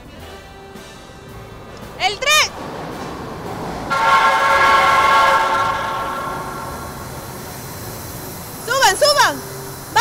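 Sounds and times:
subway train pulling in: 0:00.0 - 0:10.0.

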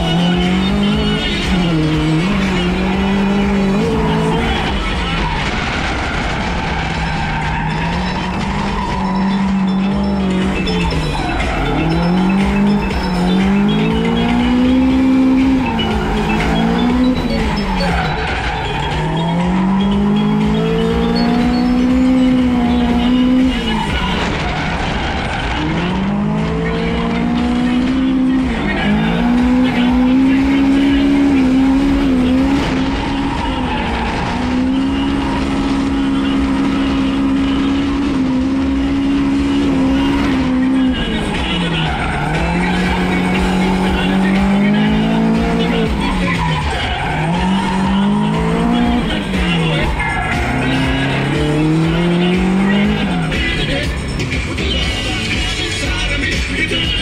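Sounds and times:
car engine revving hard: 0:00.0 - 0:57.0.

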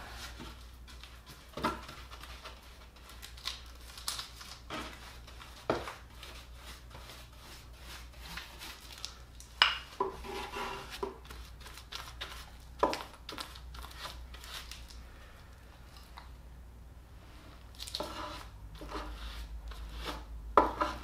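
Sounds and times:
paintbrush scrubbing on wood: 0:05.0 - 0:08.9.

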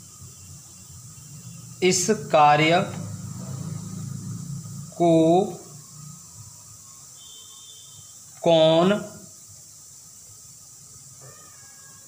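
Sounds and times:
thin high whistle-like tone: 0:00.0 - 0:01.9, 0:05.5 - 0:08.9
faint steady hiss: 0:00.0 - 0:12.0.

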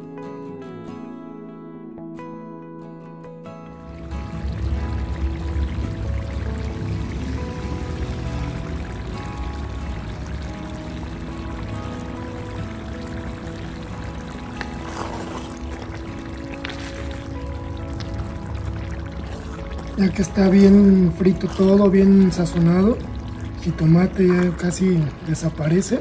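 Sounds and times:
calm background music: 0:00.0 - 0:26.0
sauce sizzling in a pot: 0:04.0 - 0:26.0.

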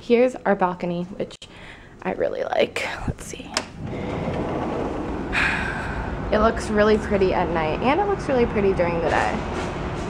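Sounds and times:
distant traffic rumble: 0:03.0 - 0:10.0.

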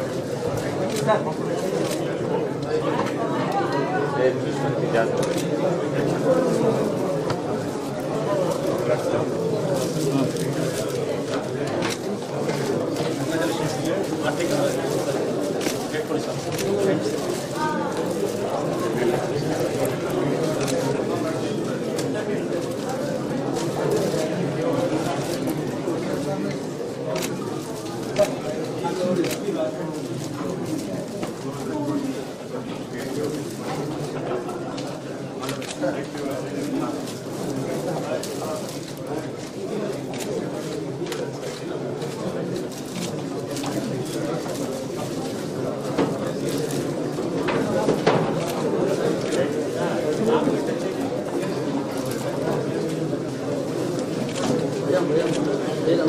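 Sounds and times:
murmur of overlapping voices: 0:00.0 - 0:56.0.

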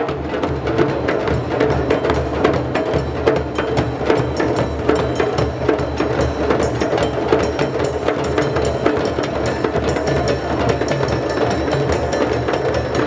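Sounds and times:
djembes played by hand: 0:00.0 - 0:13.0.

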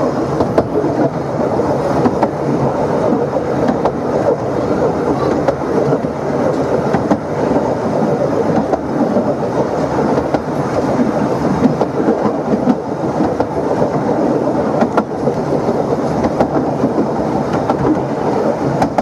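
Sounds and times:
faint clicks from rails: 0:00.0 - 0:19.0
railway carriage wheels rumbling: 0:00.0 - 0:19.0.

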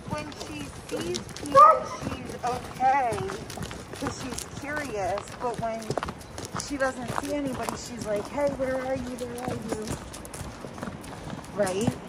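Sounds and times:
footsteps on leafy dirt trail: 0:00.0 - 0:12.0.

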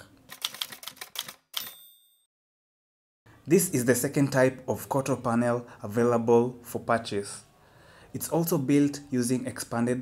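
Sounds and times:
typewriter key clacks: 0:00.3 - 0:01.8
typewriter bell ding: 0:01.6 - 0:02.3.

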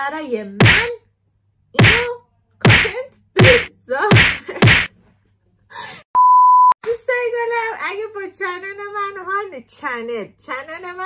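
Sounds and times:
electronic test-tone bleep: 0:06.2 - 0:06.8.

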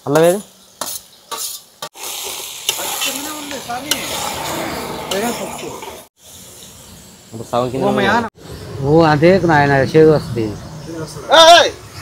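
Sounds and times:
food sizzling in metal pot: 0:00.0 - 0:08.5.

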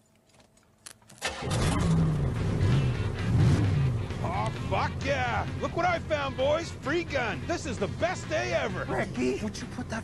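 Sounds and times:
cartoon car engine revving: 0:01.2 - 0:08.8.

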